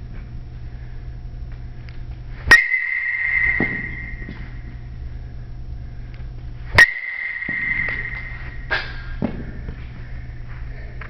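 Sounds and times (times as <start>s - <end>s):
metal bat hitting ball: 2.5s - 4.6s, 6.8s - 9.5s.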